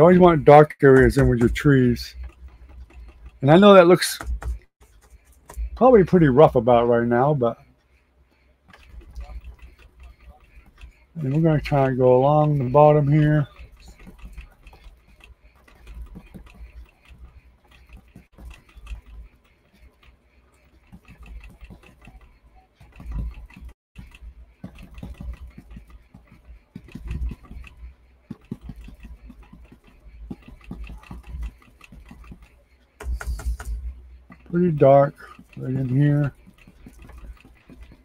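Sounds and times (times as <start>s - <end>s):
paintbrush dabbing on canvas: 0.0s - 38.0s.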